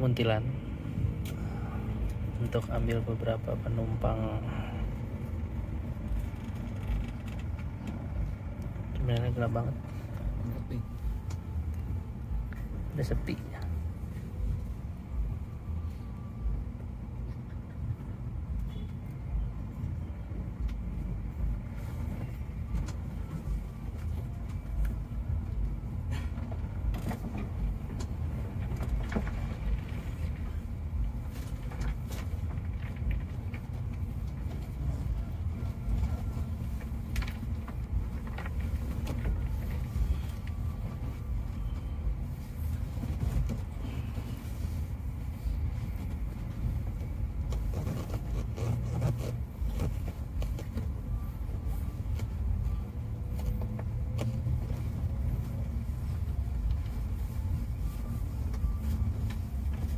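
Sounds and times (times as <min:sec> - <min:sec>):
engine and road rumble: 0:00.0 - 0:59.9.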